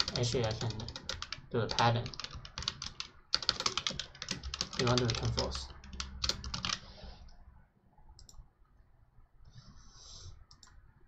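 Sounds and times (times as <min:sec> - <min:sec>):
computer mouse clicks: 0:08.2 - 0:08.5, 0:10.4 - 0:10.8.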